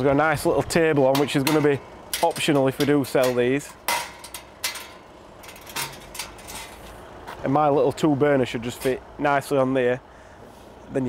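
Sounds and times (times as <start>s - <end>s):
metal latch clicks and clinks: 1.1s - 6.8s
metal table swinging down: 1.2s - 6.9s.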